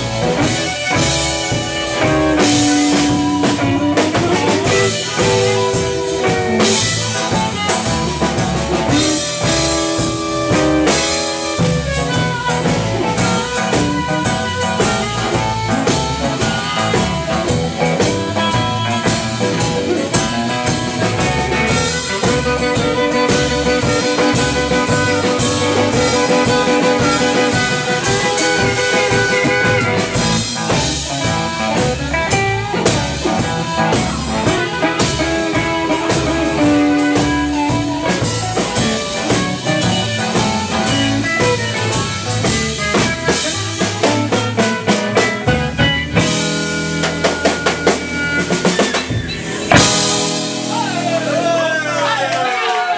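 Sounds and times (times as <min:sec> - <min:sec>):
harmonica: 0:00.0 - 0:52.1
bass: 0:00.0 - 0:52.9
drum kit: 0:00.0 - 0:52.9
electric guitar: 0:00.0 - 0:52.9.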